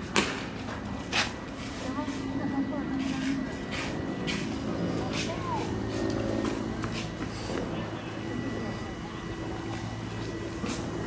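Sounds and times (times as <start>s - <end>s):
faint distant voices: 0.0s - 11.0s
motor hum: 0.0s - 11.0s.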